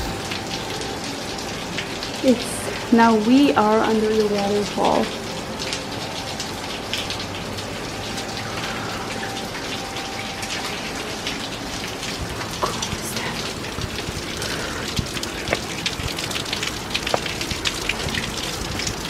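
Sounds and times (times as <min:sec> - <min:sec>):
hiss of falling water: 0:12.6 - 0:16.1
drops tapping nearby: 0:12.6 - 0:18.9.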